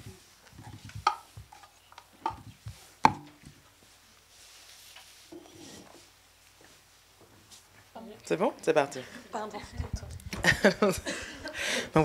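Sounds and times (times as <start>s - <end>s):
sharp knocks: 3.0s - 3.4s.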